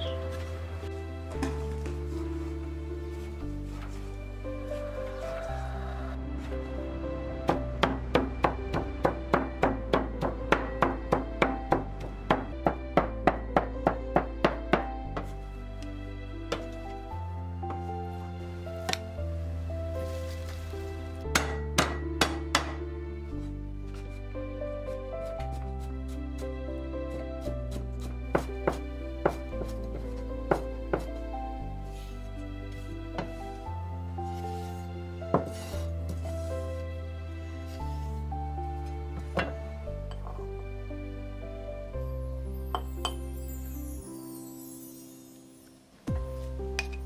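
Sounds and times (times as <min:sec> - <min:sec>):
background music: 0:00.0 - 0:47.0
cleaver chopping on wooden block: 0:21.3 - 0:22.8.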